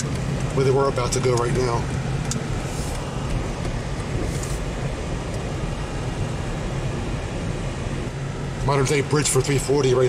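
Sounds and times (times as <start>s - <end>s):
car road noise from inside: 0.0s - 10.0s.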